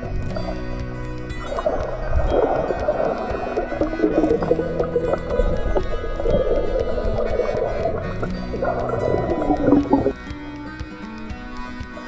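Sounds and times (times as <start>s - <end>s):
background music: 0.0s - 12.0s
small pops and clicks: 0.0s - 12.0s
underwater water movement and bubbles: 0.0s - 12.0s.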